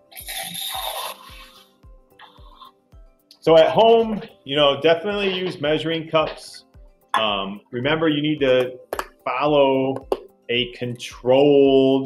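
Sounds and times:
background music with a beat: 0:00.0 - 0:12.0.

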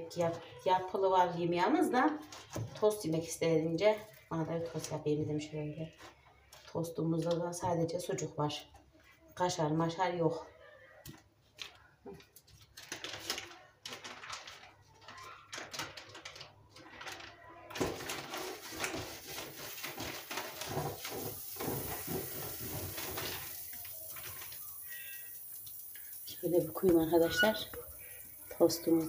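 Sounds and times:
crackling sizzle: 0:17.9 - 0:29.0.

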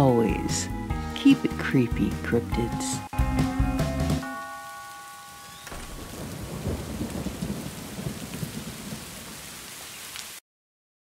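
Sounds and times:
held music notes: 0:00.0 - 0:06.0
rain: 0:02.7 - 0:10.4
thunder rumble: 0:05.4 - 0:09.7.

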